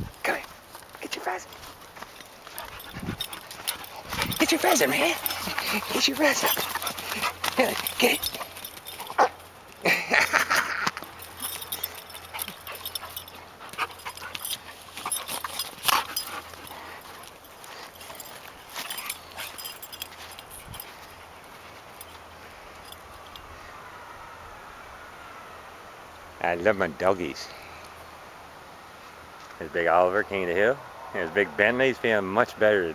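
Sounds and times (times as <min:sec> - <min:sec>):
dogs scuffling on sand: 0:00.0 - 0:23.1.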